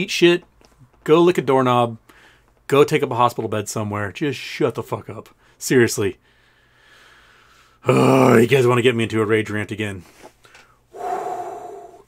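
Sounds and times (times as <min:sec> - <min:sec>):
man breathing heavily: 0:02.1 - 0:02.5, 0:06.2 - 0:07.8, 0:10.6 - 0:12.0.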